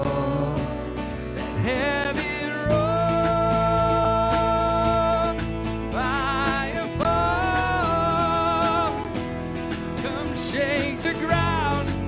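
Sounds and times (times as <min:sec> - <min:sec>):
man and woman singing: 0:00.0 - 0:09.1, 0:10.0 - 0:12.0
strummed acoustic guitar: 0:00.0 - 0:12.0.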